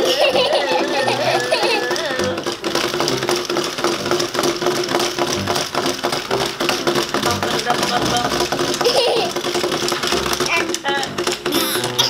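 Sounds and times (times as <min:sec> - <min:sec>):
child laughing: 0:00.0 - 0:02.4, 0:08.7 - 0:09.6, 0:10.5 - 0:12.0
toy gear mechanisms clicking and rattling: 0:00.0 - 0:12.0.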